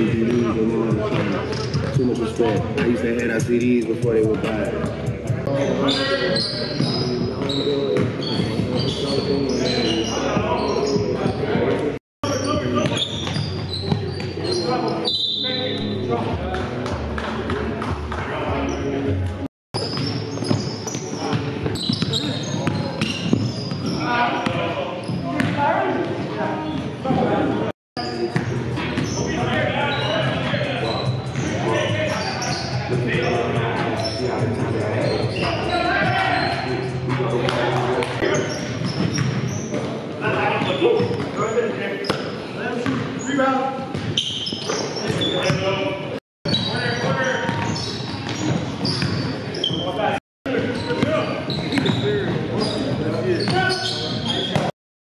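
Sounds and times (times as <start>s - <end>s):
basketball bouncing on court: 12.6s - 14.4s, 19.8s - 25.6s, 42.8s - 43.1s, 46.5s - 49.3s.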